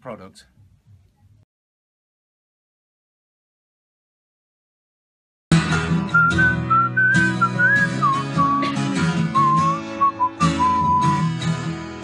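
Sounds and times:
acoustic guitar strumming: 5.5 - 12.0
person whistling a tune: 6.1 - 11.2.

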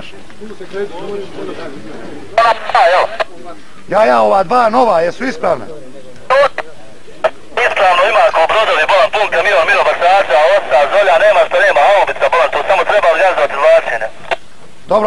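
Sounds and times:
static clicks: 2.4 - 3.3, 6.2 - 14.8
voice over walkie-talkie: 2.4 - 3.3, 6.3 - 14.4.

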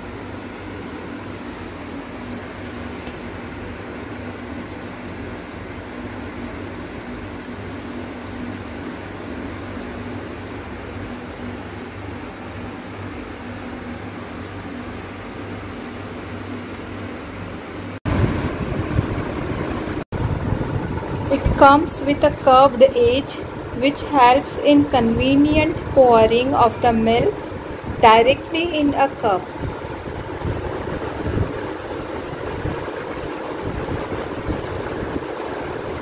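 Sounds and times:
cooling fan humming: 0.0 - 36.0
louder rough noise: 18.1 - 36.0.

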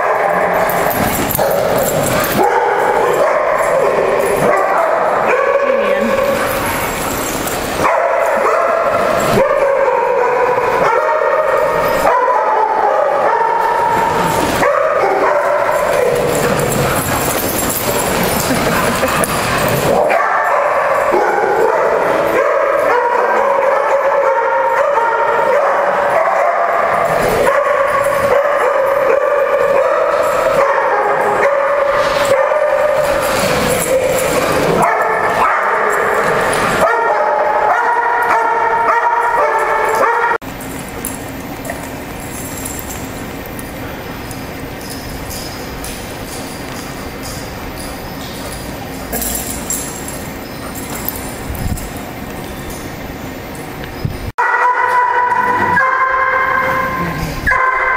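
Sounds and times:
dog barking: 0.0 - 0.7, 1.4 - 6.4, 7.8 - 17.2, 19.9 - 40.4, 54.4 - 57.9
dogs yipping and whining: 0.0 - 57.9.

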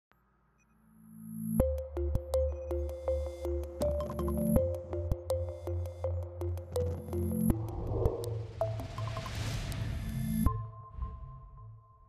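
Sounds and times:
electronic logo music: 4.6 - 10.3.

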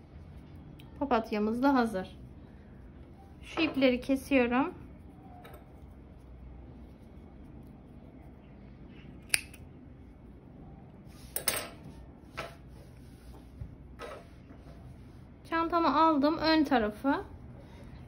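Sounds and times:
thread snips cutting: 9.2 - 9.6.

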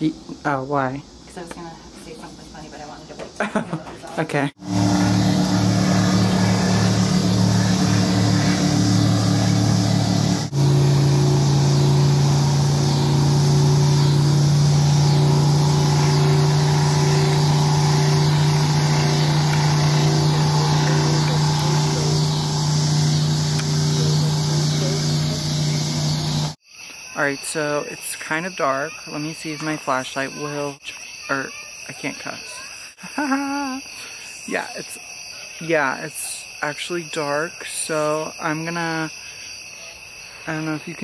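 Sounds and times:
motorboat engines humming: 4.6 - 26.6.

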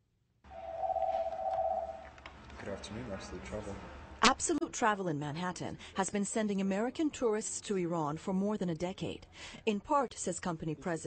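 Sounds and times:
low hum: 0.5 - 2.2
telephone ringing: 0.6 - 2.1.

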